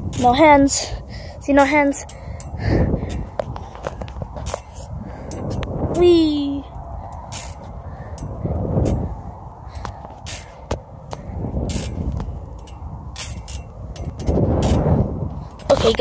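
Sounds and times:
wind over phone microphone: 0.0 - 16.0.

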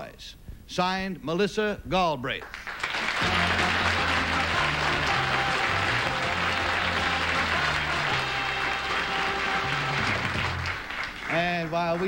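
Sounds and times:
studio audience applauding: 2.4 - 12.0.

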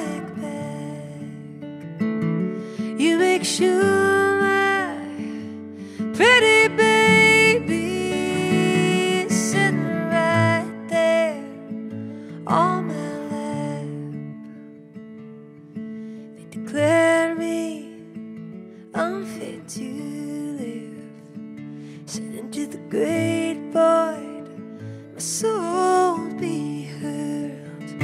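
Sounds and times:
woman singing: 0.0 - 1.7, 2.4 - 14.6, 16.4 - 28.0
acoustic guitar: 0.0 - 28.0.

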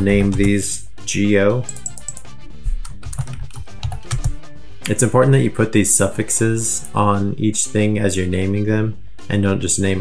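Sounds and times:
quiet background music: 0.0 - 10.0
computer keyboard keystrokes: 1.6 - 4.3.

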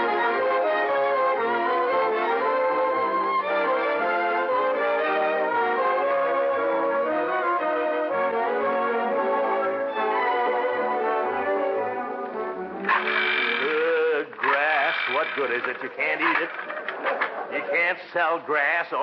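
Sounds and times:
orchestral music with brass: 0.0 - 13.6
man talking: 13.6 - 16.8, 17.5 - 19.0.

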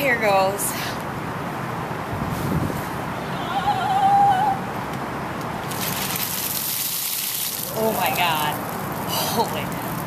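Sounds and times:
water gushing and splashing: 5.6 - 10.0.

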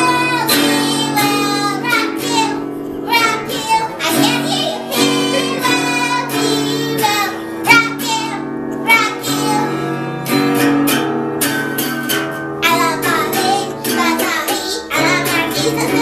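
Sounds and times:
girl singing: 0.0 - 10.6, 12.6 - 16.0
acoustic guitar strumming: 0.0 - 16.0.

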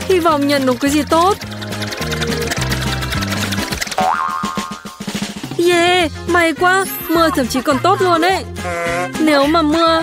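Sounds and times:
prize wheel ticking: 0.0 - 4.1
background music: 0.0 - 10.0
cartoon boing effect: 3.8 - 5.1.

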